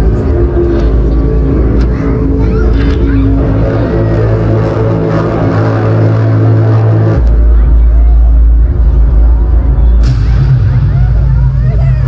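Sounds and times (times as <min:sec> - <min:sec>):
loud deep rumble: 0:00.0 - 0:12.0
music with low held notes: 0:00.0 - 0:12.0.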